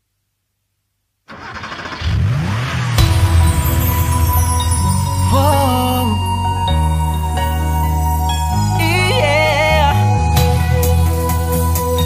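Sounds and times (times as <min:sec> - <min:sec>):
car engine starting and revving: 0:01.3 - 0:06.3.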